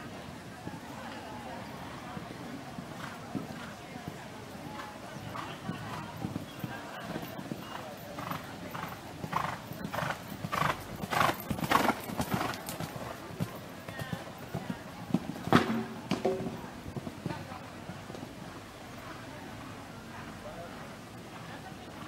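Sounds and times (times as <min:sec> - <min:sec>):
horse hoofbeats on sand: 0:02.2 - 0:18.5.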